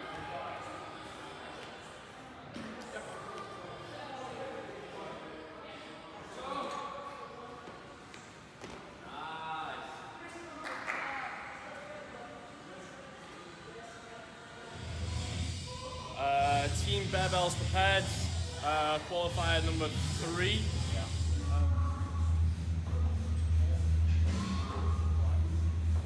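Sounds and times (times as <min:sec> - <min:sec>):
voices echoing in hall: 0:00.0 - 0:25.8
music with low beat: 0:19.6 - 0:26.0.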